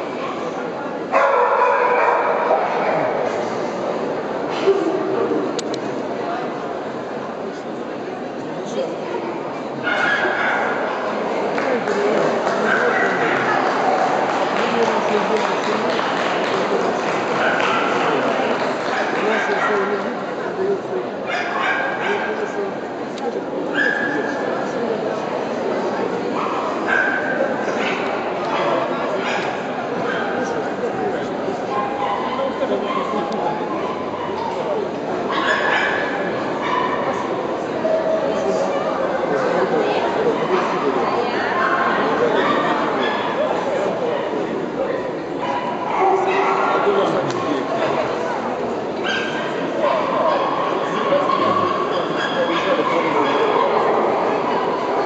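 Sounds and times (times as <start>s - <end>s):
murmur of crowd chatter: 0.0s - 55.0s
people talking: 0.0s - 55.0s.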